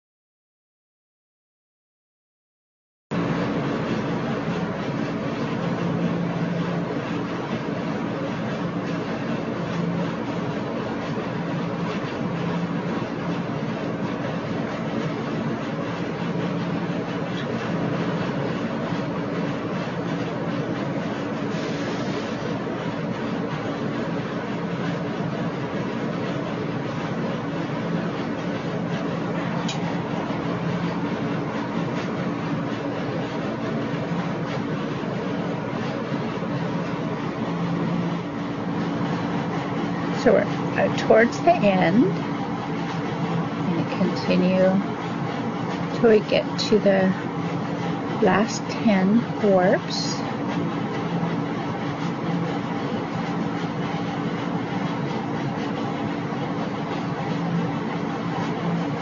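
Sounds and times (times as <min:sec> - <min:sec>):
mechanical hum with hiss: 0:03.1 - 0:59.0.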